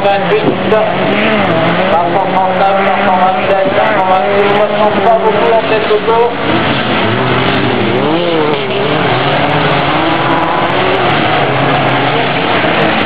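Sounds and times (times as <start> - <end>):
race engines revving: 0.0 - 13.0.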